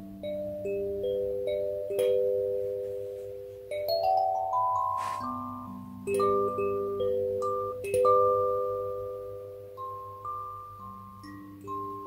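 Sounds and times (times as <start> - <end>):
kalimba plucked melody: 0.0 - 12.0.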